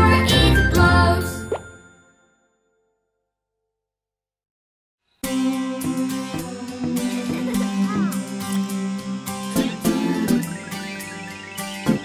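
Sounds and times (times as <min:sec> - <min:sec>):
cheerful children's song: 0:00.0 - 0:01.8, 0:05.3 - 0:12.0.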